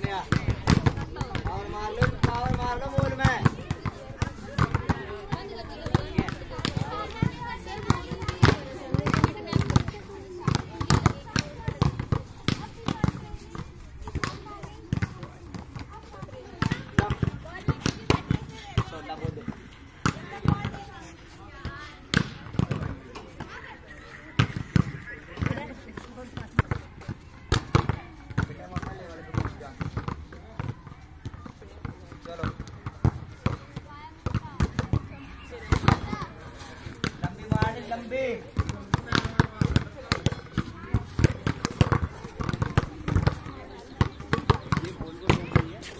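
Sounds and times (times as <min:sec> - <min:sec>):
voices talking: 0:00.0 - 0:45.9.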